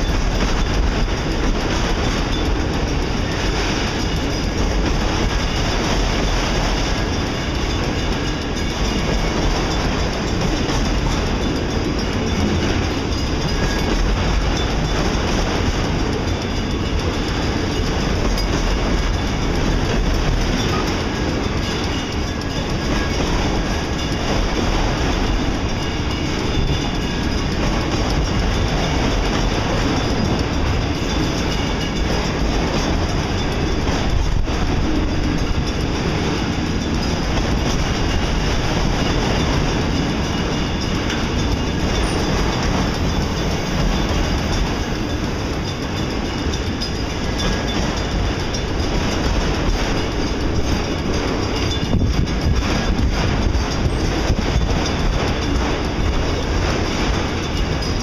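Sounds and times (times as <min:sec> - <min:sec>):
freight train wheels on rails: 0:00.0 - 0:58.0.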